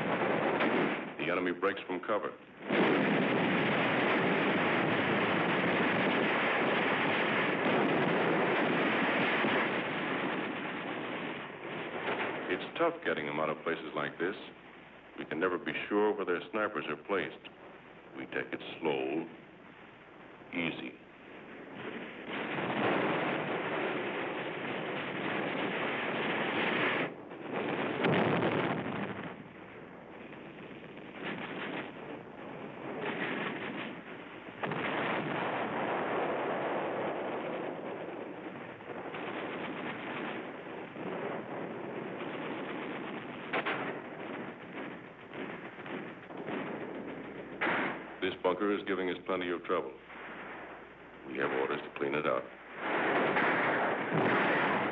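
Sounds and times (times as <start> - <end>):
gunshots: 0.0 - 14.5, 20.5 - 54.9
constant harsh din: 0.0 - 54.9.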